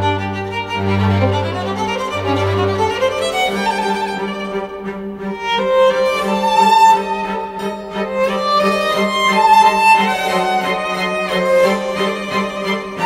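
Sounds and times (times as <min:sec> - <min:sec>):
held string notes: 0:00.0 - 0:13.0
violin melody: 0:00.0 - 0:13.0.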